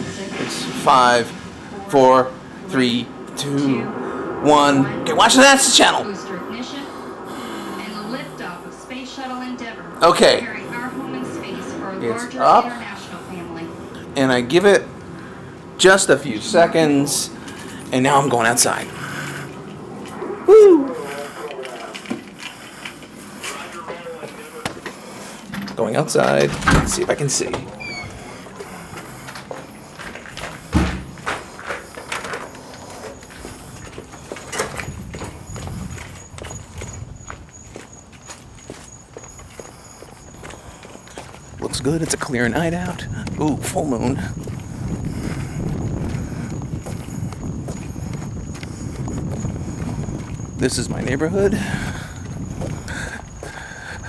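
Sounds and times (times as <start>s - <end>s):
footsteps outdoors: 6.0s - 54.0s.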